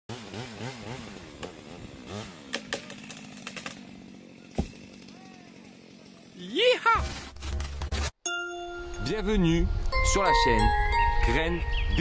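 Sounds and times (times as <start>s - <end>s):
chainsaw engine revving: 0.1s - 6.6s.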